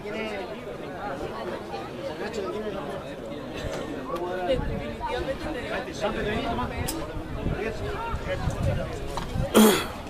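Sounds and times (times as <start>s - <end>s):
spectators chatting: 0.0s - 10.0s
loud short cough: 9.6s - 10.0s.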